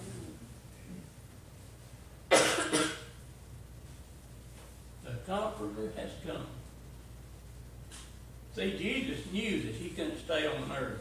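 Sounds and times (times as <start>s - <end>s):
person coughing: 2.3s - 3.1s.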